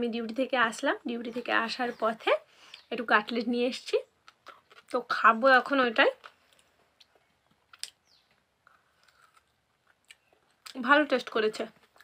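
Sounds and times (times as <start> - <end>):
woman's voice: 0.0 - 4.1, 4.9 - 6.2, 10.7 - 11.8
person chewing crunchy food: 4.2 - 5.0, 6.2 - 10.7.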